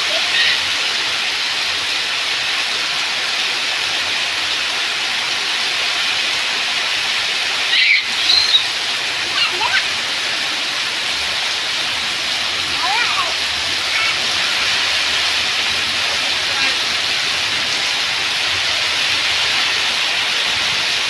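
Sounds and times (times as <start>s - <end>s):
heavy rain on concrete: 0.0s - 21.0s.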